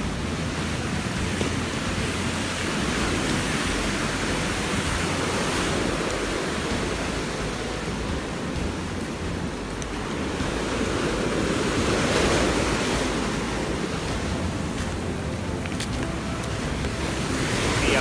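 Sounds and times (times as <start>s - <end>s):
waves breaking on beach: 0.0s - 18.0s.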